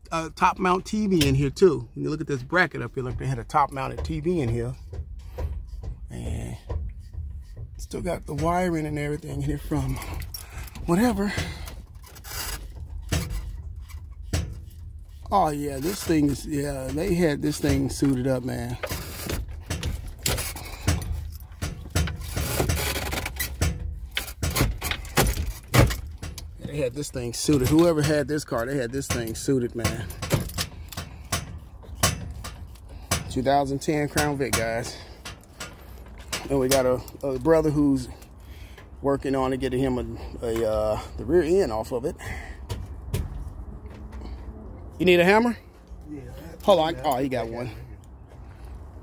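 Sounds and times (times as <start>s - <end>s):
handling clicks and knocks: 0.4s - 46.0s.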